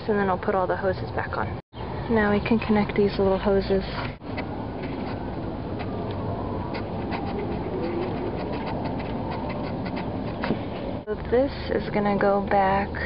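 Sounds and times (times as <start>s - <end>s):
outdoor background rumble: 0.0s - 13.0s
dove cooing: 4.4s - 11.0s.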